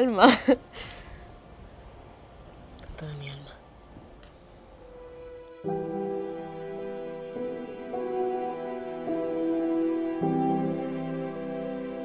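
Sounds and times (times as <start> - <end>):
faint background ambience: 0.0 - 12.0.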